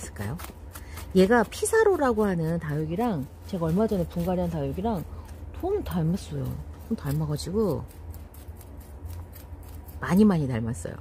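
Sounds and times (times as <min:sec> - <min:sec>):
tweezers scratching through soil: 0:00.0 - 0:11.0.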